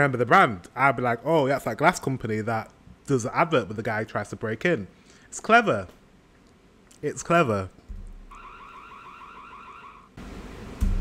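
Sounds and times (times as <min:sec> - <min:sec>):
burglar alarm warbling: 0:08.3 - 0:10.2.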